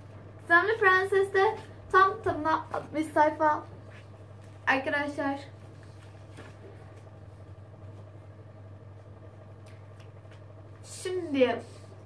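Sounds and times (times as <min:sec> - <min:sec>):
steady low hum: 0:00.0 - 0:12.0
book pages rustling: 0:05.6 - 0:08.1.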